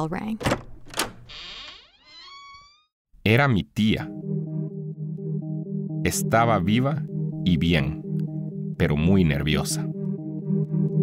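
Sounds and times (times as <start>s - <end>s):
squeaky rising tone: 1.3s - 3.0s.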